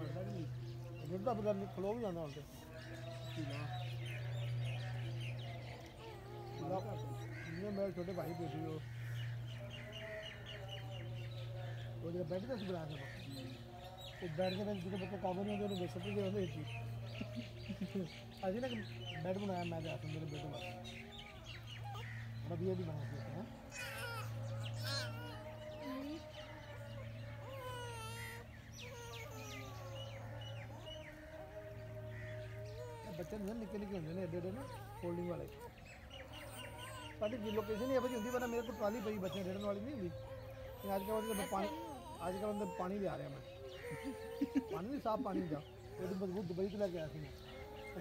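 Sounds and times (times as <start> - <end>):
birds chirping: 0.0 - 48.0.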